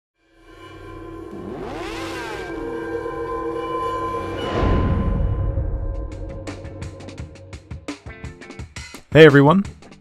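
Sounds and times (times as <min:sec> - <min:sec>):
sustained layered tone: 0:00.2 - 0:07.9
pitch sweeps: 0:00.2 - 0:08.0.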